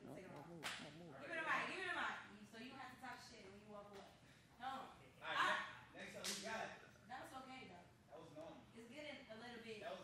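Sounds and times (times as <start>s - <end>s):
sharp snap: 6.2s - 6.5s.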